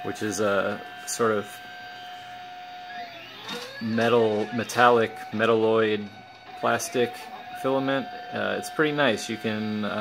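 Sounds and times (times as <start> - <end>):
stepper motors whining: 0.0 - 10.0.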